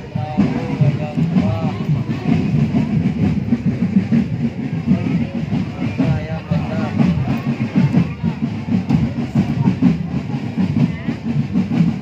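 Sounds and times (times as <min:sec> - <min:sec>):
marching drums playing: 0:00.0 - 0:12.0.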